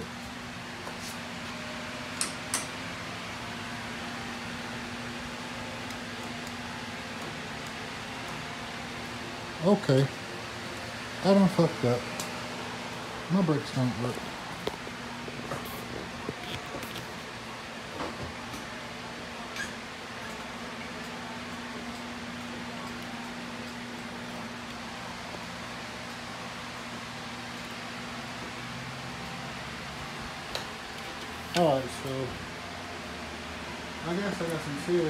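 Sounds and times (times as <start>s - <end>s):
mechanical hum: 0.0s - 35.0s.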